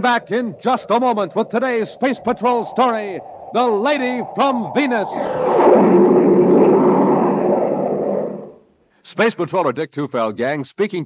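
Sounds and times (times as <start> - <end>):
loud rushing noise: 1.4 - 8.6.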